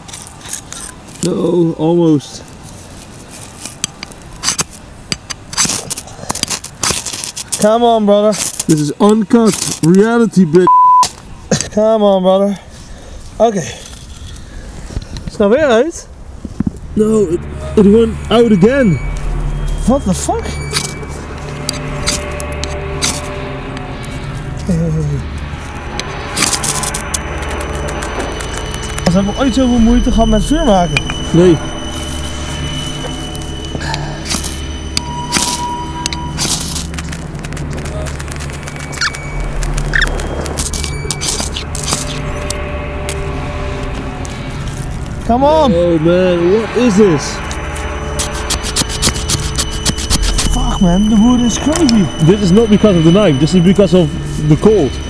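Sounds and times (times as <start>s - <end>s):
background music: 17.2s - 55.0s
knife scraping ferro rod: 47.7s - 51.2s.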